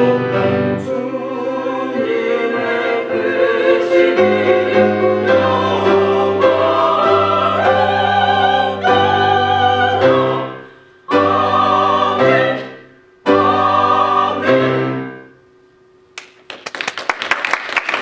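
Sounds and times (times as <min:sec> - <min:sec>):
choir singing: 0:00.0 - 0:15.4
piano accompaniment: 0:00.0 - 0:16.2.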